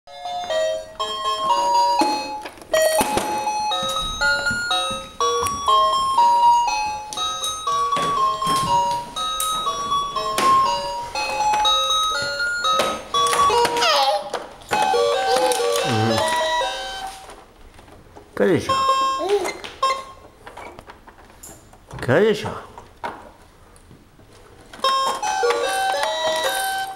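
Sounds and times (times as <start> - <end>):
toy beeping melody: 0.1 - 13.8, 14.7 - 17.2, 18.7 - 20.2, 24.8 - 26.9
babies' voices: 13.5 - 14.3.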